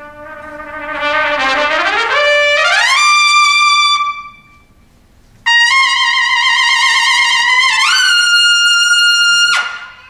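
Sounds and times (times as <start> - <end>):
solo trumpet high note: 0.0 - 10.0.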